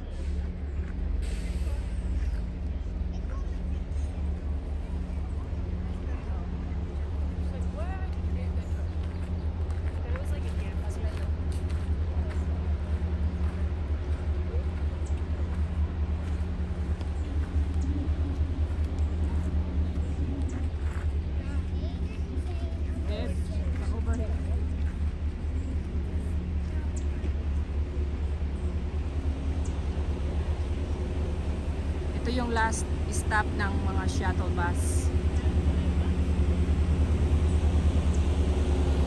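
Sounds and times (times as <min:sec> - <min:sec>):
bus engine humming: 0:00.0 - 0:39.0
faint voices: 0:00.0 - 0:39.0.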